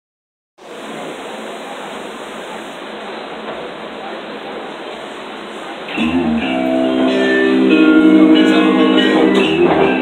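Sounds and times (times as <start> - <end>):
bar room background noise: 0.6 - 10.0.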